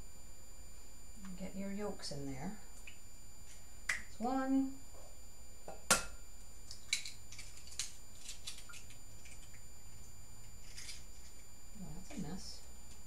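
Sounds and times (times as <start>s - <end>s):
eggshell cracking: 5.9s - 11.5s.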